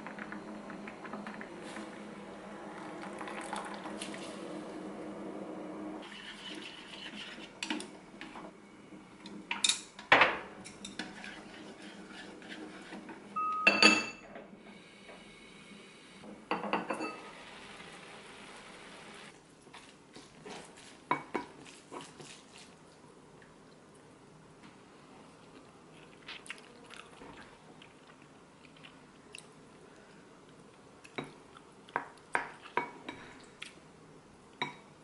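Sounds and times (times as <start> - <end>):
water pouring into a pot: 2.8 - 4.3.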